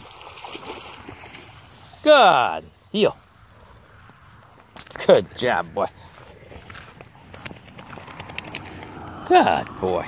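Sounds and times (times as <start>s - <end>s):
footsteps through grass: 1.2s - 8.2s.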